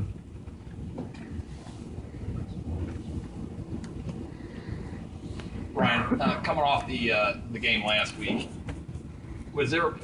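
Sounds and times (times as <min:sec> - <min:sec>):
low rumbling room noise: 0:00.0 - 0:10.0.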